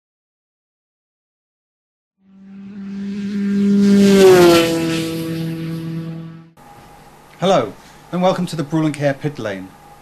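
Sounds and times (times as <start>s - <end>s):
kart engine passing at speed: 2.2s - 6.6s.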